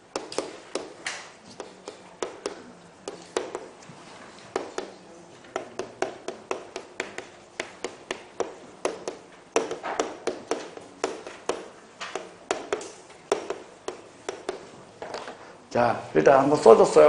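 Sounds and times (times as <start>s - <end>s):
chalk tapping on chalkboard: 0.0s - 15.3s.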